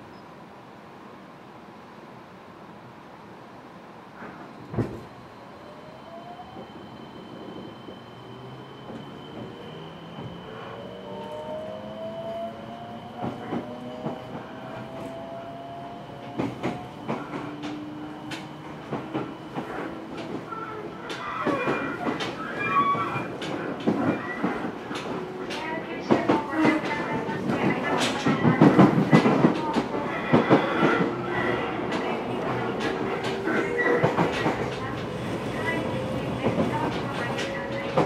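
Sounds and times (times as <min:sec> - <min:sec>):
electric train humming: 0:05.2 - 0:38.0.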